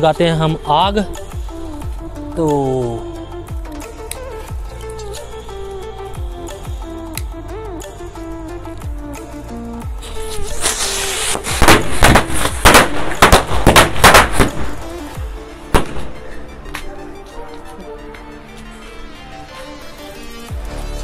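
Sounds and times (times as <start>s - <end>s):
firecrackers crackling bangs: 10.0s - 16.3s
skyrocket launching with hiss: 10.0s - 16.3s.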